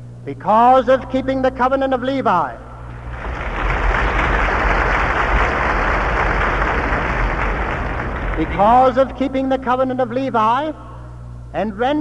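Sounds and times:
crowd applauding: 2.9 - 9.5.

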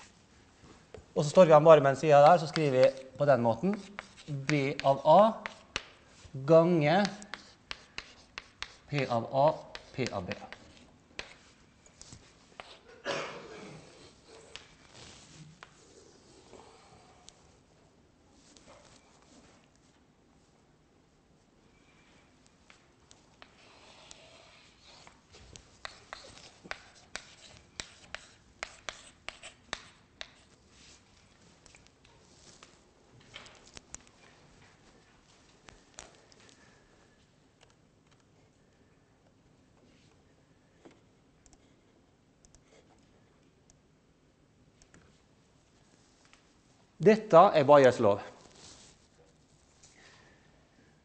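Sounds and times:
chalk tapping and scraping on board: 2.2 - 11.6, 12.6 - 12.8, 23.4 - 30.6.

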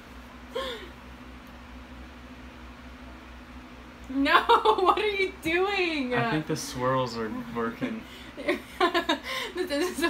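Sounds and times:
electric fan running: 0.0 - 10.0.

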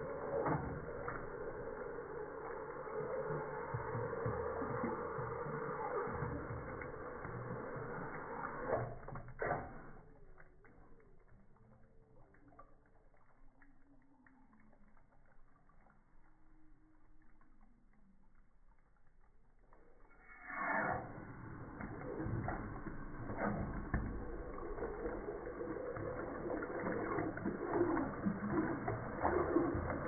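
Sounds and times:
water rushing into trough: 0.0 - 17.9, 19.6 - 30.0
water dripping: 0.0 - 30.0.

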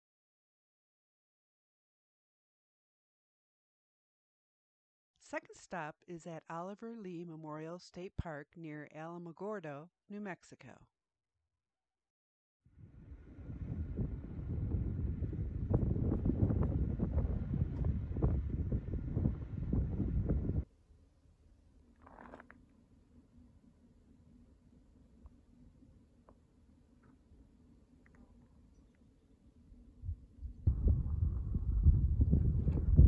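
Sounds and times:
wind buffeting microphone: 12.8 - 20.6, 30.0 - 33.0.

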